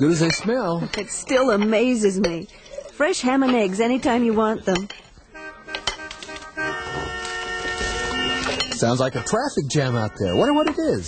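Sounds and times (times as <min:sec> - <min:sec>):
car horns honking: 0:05.3 - 0:11.0.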